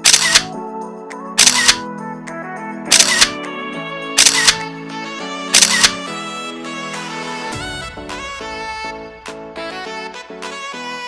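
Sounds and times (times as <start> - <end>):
camera shutter clicks: 0.0 - 0.5, 1.4 - 1.8, 2.9 - 3.4, 4.2 - 4.6, 5.6 - 6.0
background music: 0.0 - 11.0.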